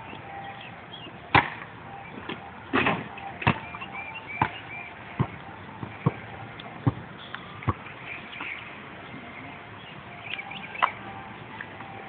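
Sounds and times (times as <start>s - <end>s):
basketball bouncing on dirt: 3.2s - 8.6s.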